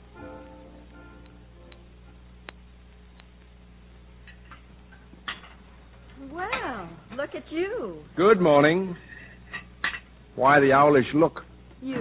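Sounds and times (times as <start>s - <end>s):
low recording hum: 0.0s - 12.0s
sharp light clicks: 1.2s - 3.5s.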